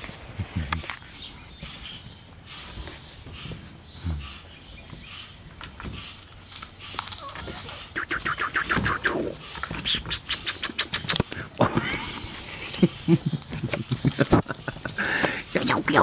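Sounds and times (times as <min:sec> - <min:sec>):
puppies clicking and scuffling on wood: 0:00.0 - 0:15.4
puppy vocal sounds: 0:06.9 - 0:14.0.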